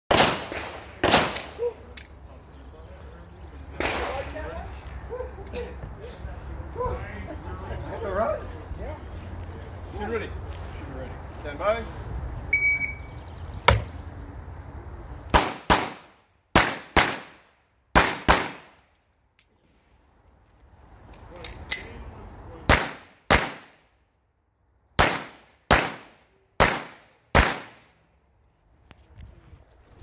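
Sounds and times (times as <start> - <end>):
pistol shots: 0.1 - 1.6, 15.3 - 17.4, 18.0 - 18.7, 22.7 - 23.8, 25.0 - 27.8
shot timer beep: 12.5 - 13.1.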